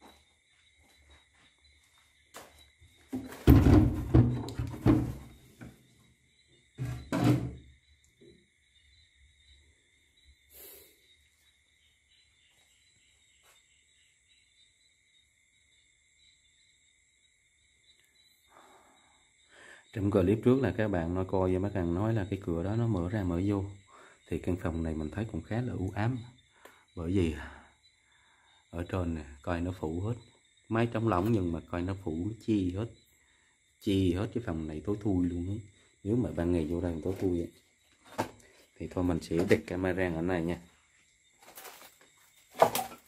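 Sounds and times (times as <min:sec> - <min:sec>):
wooden door thunks and scrapes: 0:03.1 - 0:05.8, 0:06.8 - 0:07.7.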